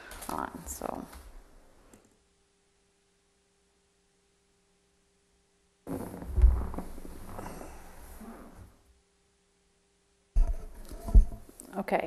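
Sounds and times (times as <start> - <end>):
microphone handling bumps: 5.9 - 8.7, 10.4 - 11.5.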